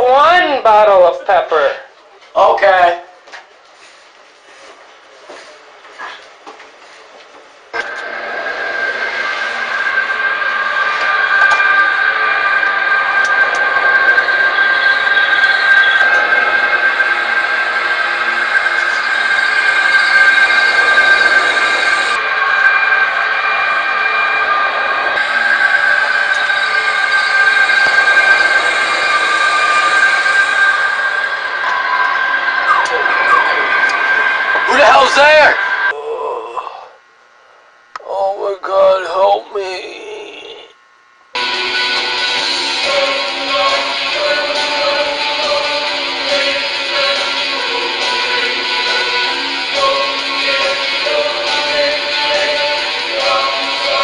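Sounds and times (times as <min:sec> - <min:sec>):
loud drone of held tones: 0:07.7 - 0:54.0.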